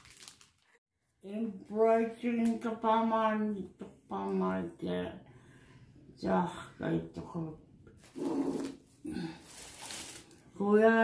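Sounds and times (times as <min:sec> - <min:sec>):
plastic bag crinkling: 0:00.0 - 0:00.8, 0:08.0 - 0:10.4.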